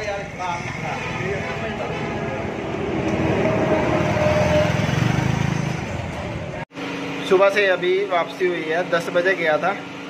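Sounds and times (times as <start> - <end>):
vehicle engine running: 0.0 - 6.9.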